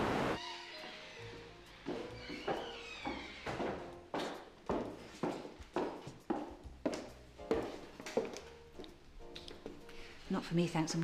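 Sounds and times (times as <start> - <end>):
soft background music: 0.4 - 11.0
footsteps on a hard floor: 1.7 - 9.9.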